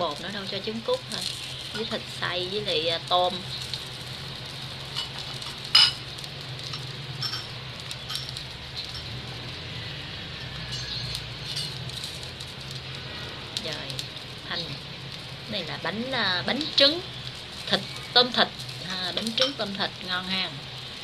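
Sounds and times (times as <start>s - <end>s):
food sizzling in oil: 0.0s - 21.0s.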